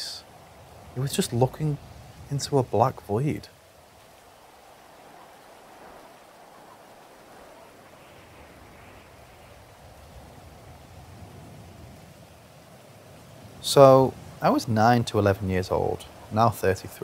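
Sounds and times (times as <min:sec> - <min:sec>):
faint background hiss: 0:00.0 - 0:17.0.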